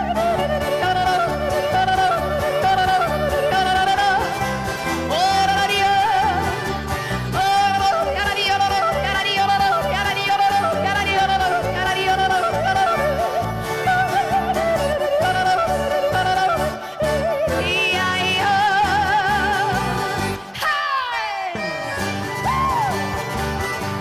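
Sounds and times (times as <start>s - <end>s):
person yodeling: 0.0s - 4.4s, 7.3s - 23.2s
band playing bouncy beat: 0.0s - 16.7s, 21.2s - 24.0s.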